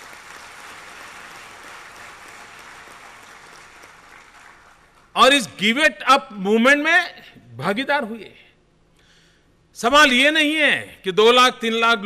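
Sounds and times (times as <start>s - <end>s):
audience applauding: 0.0s - 5.1s.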